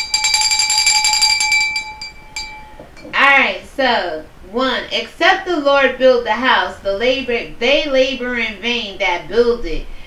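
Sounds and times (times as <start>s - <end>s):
handbell shaken rapidly: 0.0s - 2.8s
person speaking: 3.0s - 9.9s.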